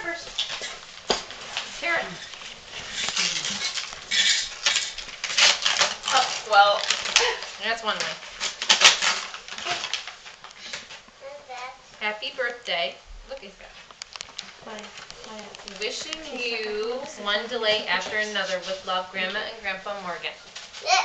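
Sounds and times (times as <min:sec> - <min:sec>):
tissue paper rustling: 0:00.0 - 0:11.1, 0:15.7 - 0:20.9
voices talking: 0:14.6 - 0:20.4.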